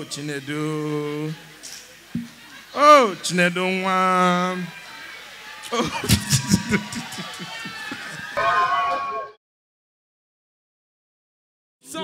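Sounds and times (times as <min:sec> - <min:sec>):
audience laughter and murmur: 0:00.0 - 0:09.2.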